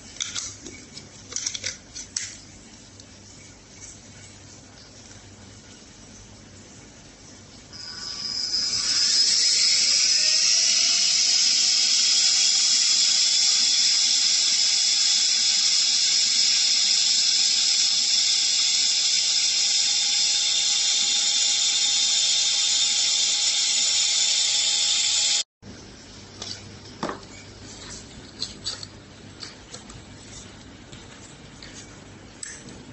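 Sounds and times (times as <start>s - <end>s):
vacuum pump motor whine: 7.7s - 25.5s.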